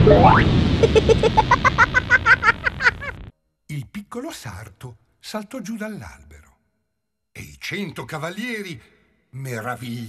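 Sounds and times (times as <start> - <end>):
rising whistle-like glide: 0.0 - 0.5.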